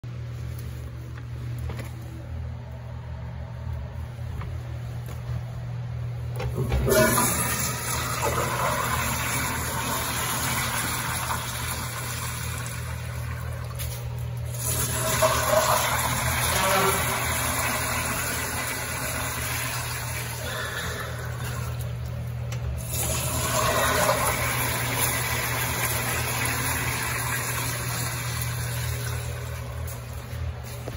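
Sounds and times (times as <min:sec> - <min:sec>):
steady low hum: 0:00.0 - 0:30.9
toilet flushing: 0:06.3 - 0:30.8.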